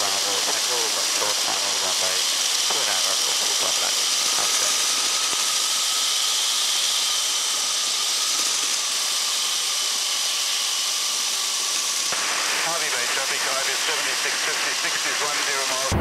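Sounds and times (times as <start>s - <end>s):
aircraft engine and propeller: 0.0s - 16.0s
steady whining tones: 0.0s - 16.0s.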